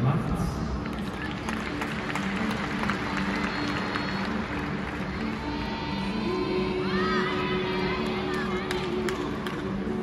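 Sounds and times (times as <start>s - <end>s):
crowd murmur and voices: 0.0s - 10.0s
music playing in a large hall: 0.0s - 10.0s.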